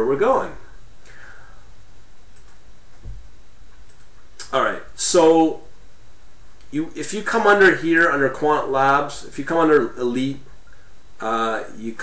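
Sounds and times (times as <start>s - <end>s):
background hiss: 0.0s - 12.0s
computer mouse clicks: 2.3s - 2.6s, 3.8s - 4.5s
soft low thump: 3.0s - 3.3s.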